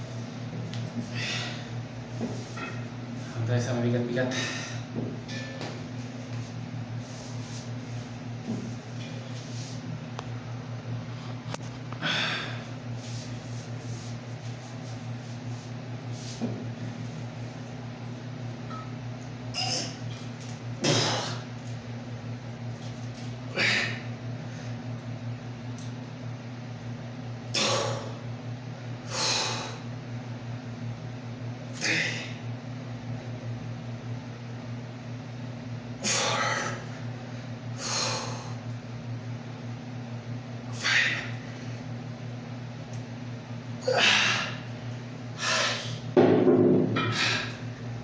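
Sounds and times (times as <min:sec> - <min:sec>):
steady low hum: 0:00.0 - 0:48.0
man breathing out hard: 0:01.0 - 0:01.7, 0:12.0 - 0:12.8
man grunting: 0:31.8 - 0:32.4, 0:36.1 - 0:36.8, 0:40.8 - 0:41.4, 0:43.8 - 0:44.6.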